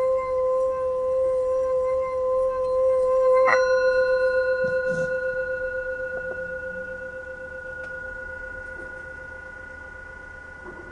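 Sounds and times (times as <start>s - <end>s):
singing bowl ringing: 0.0s - 10.9s.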